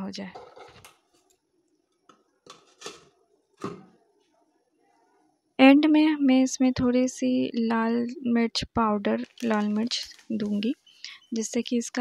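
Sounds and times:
cookware clinking and knocking: 2.4s - 3.9s.

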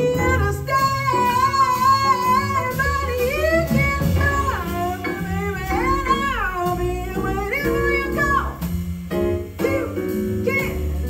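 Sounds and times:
drums: 0.0s - 11.0s
grand piano: 0.0s - 11.0s
upright bass: 0.0s - 11.0s
woman singing wordless blues line: 0.0s - 11.0s.

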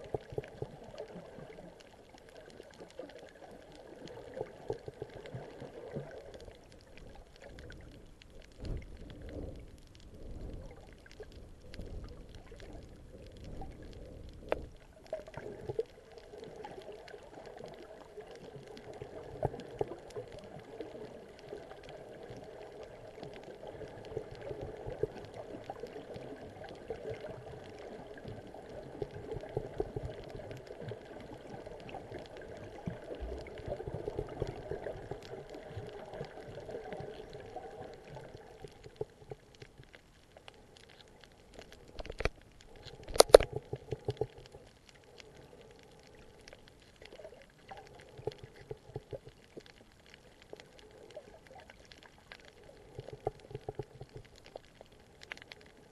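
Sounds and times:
faint crackling ticks: 0.0s - 55.9s
underwater water rushing and gurgling: 0.0s - 55.9s.

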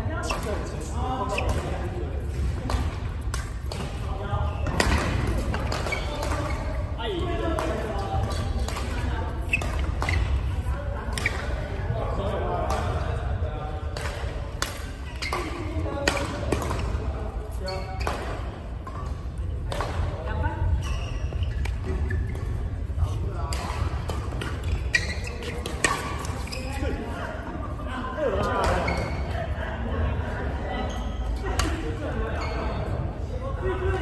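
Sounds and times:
voices in hall: 0.0s - 34.0s
rackets striking shuttlecocks: 0.2s - 11.7s, 13.8s - 17.0s, 17.8s - 20.2s, 21.3s - 26.6s
shoes squeaking on court floor: 0.2s - 11.8s, 14.8s - 27.2s, 28.4s - 29.4s, 30.7s - 31.4s, 32.2s - 33.1s.

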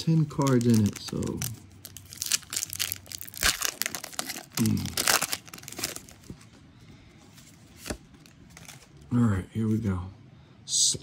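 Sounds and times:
foil wrapper tearing and crinkling: 0.3s - 6.2s.

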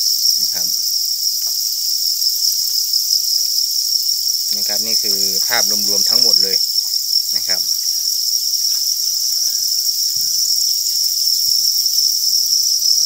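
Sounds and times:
crickets chirping: 0.0s - 13.0s.

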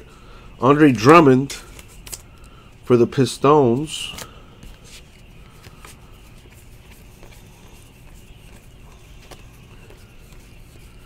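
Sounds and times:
trading cards handled: 1.6s - 2.5s, 3.7s - 11.0s.

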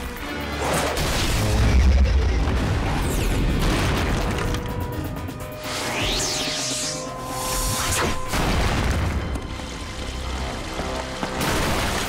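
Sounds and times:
cartoon soundtrack music: 0.0s - 10.7s
sweeping effects: 4.9s - 8.5s.

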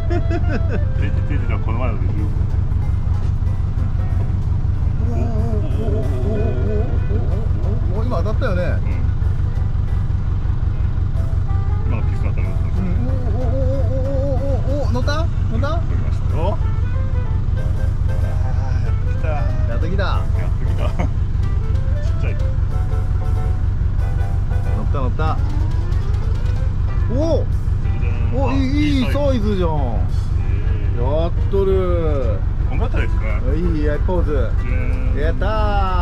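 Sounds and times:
background music: 0.0s - 36.0s
boat engine rumbling: 0.0s - 36.0s.

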